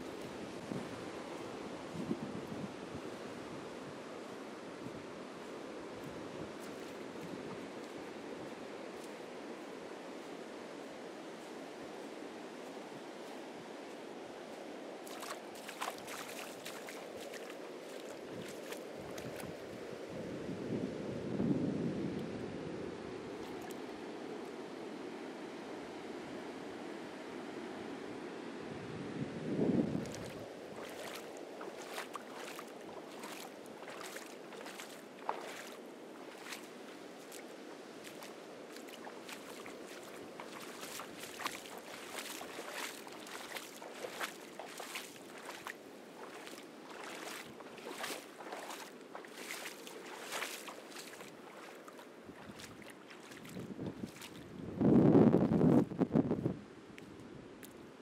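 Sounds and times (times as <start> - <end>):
ocean surf washing on beach: 0.0 - 55.9
wind buffeting microphone: 0.4 - 3.2, 28.8 - 32.6, 52.2 - 56.7.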